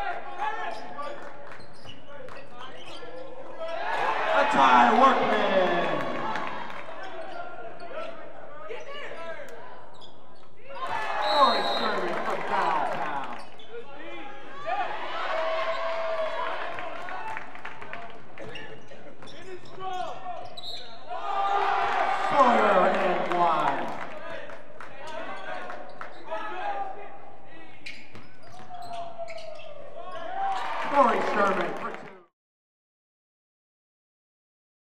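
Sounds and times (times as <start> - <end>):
voices shouting and cheering: 2.9 - 9.9, 10.6 - 17.5, 19.8 - 27.6, 28.9 - 32.2.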